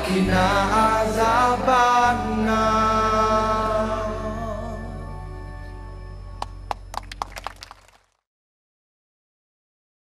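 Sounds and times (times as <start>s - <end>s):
live pop band sustained notes: 0.0s - 7.0s.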